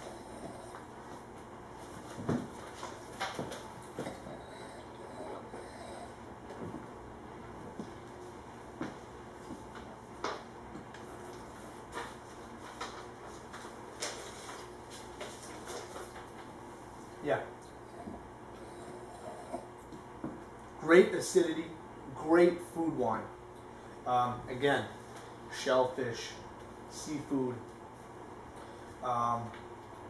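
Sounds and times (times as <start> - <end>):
faint room hum: 0.0 - 30.0.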